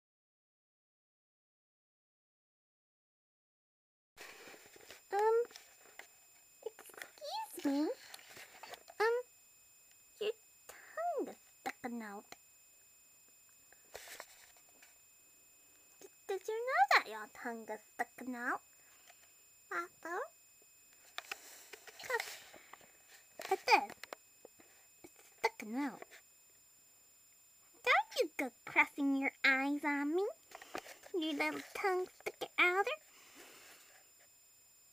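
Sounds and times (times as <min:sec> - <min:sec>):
faint room noise: 0:04.2 - 0:34.9
woman saying um: 0:05.1 - 0:05.5, 0:06.6 - 0:08.1, 0:09.0 - 0:09.2, 0:10.2 - 0:12.2, 0:16.0 - 0:18.6, 0:19.7 - 0:20.3, 0:23.4 - 0:24.0, 0:25.4 - 0:26.0, 0:27.9 - 0:30.4, 0:31.2 - 0:33.0
person speaking: 0:05.1 - 0:05.6, 0:06.6 - 0:09.2, 0:22.0 - 0:22.5, 0:23.4 - 0:24.0, 0:27.9 - 0:30.4, 0:31.0 - 0:33.0.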